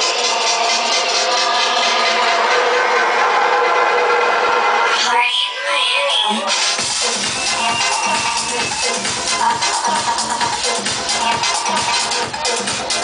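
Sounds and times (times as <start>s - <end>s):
electronic dance music: 0.0s - 13.0s.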